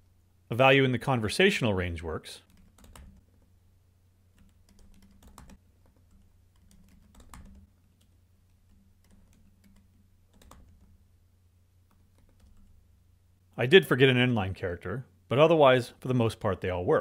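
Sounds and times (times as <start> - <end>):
faint low hum: 0.0 - 17.0
computer keyboard typing: 2.4 - 3.5, 4.3 - 11.0, 11.9 - 12.8.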